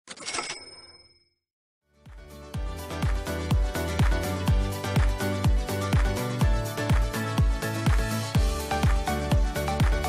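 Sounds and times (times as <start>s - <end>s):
high bell-like tones: 0.2s - 1.4s.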